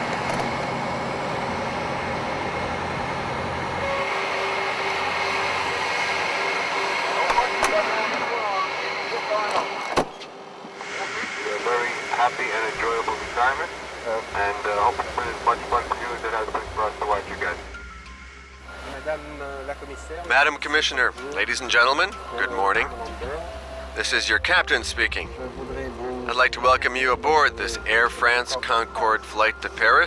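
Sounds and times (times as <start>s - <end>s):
jet engines whining: 0.0s - 30.0s.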